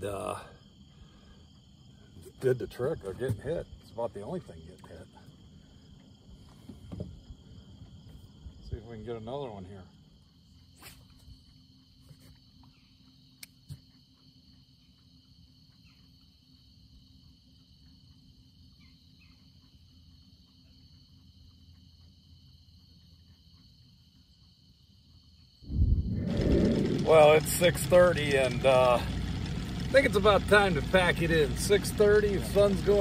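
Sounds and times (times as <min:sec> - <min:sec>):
crickets trilling: 0:00.0 - 0:33.0
wind noise rushing: 0:25.7 - 0:28.8
low rumble: 0:25.7 - 0:33.0.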